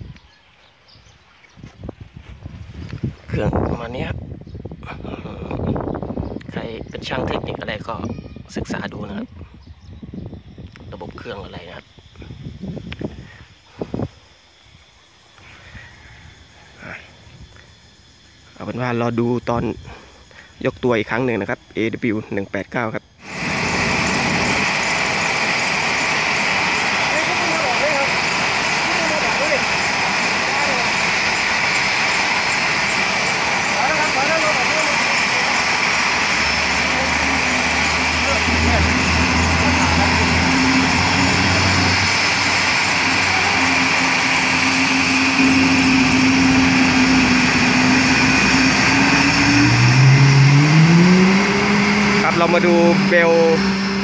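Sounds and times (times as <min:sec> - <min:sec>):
helicopter engines and rotor: 0:02.5 - 0:54.0
rising tone: 0:23.2 - 0:54.0.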